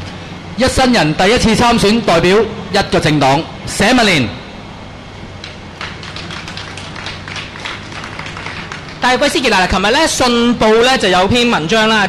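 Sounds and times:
steady low hum: 0.0 - 12.0
people clapping: 5.4 - 9.8.

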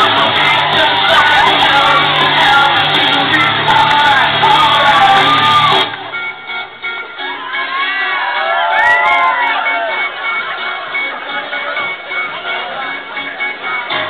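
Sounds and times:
crowd shouting and whooping: 0.0 - 6.3, 7.0 - 11.4
loud dance music with bass: 0.0 - 7.8.

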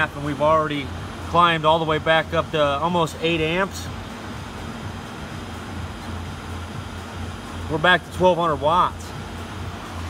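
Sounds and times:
ozone generator hiss: 0.0 - 10.0
ozone generator low hum: 0.0 - 10.0.

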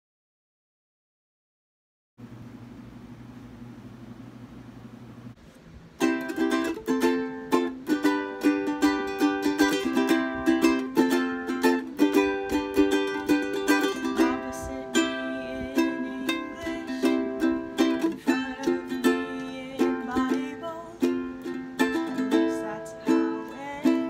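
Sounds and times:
low steady hum: 2.2 - 24.0
ukulele strumming chords: 6.0 - 24.0.

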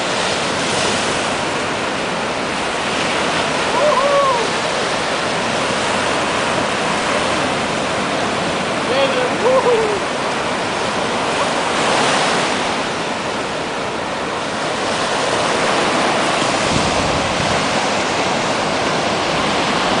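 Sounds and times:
ocean surf breaking: 0.0 - 20.0.

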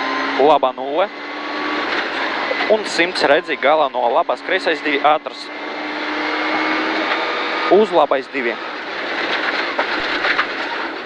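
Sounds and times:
road and tyre noise: 0.0 - 11.0
gravel clattering underbody: 8.8 - 11.0.

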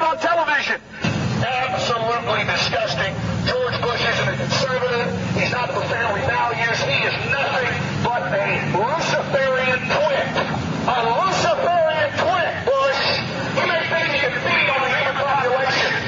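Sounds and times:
indistinct talking: 0.0 - 16.0.

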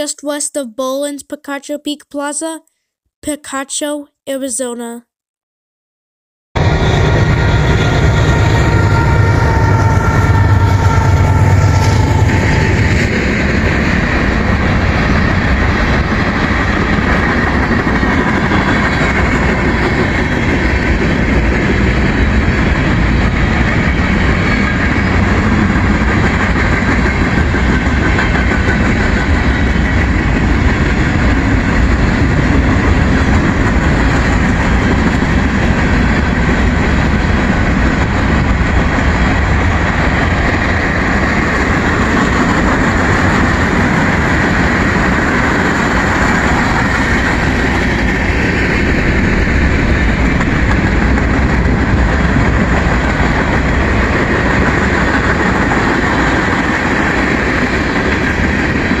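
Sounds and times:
freight train rumble: 6.6 - 59.0.

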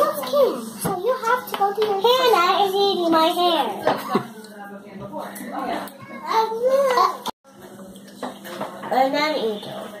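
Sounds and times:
young children talking: 5.8 - 7.4.

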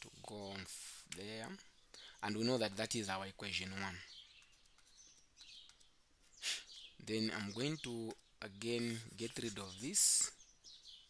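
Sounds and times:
bird chirping: 0.0 - 11.0
short hiss: 6.3 - 6.8.

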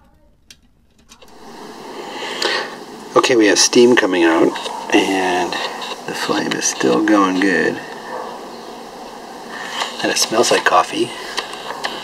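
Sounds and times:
stove burner hissing: 0.5 - 12.0
person speaking: 1.1 - 8.1, 9.1 - 12.0.

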